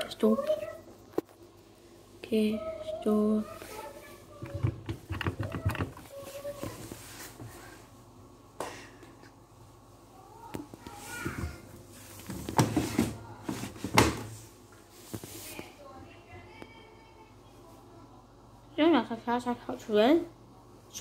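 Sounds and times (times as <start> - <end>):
child talking: 0.0 - 1.0, 2.2 - 7.0, 10.1 - 11.7, 15.7 - 18.1, 18.8 - 21.0.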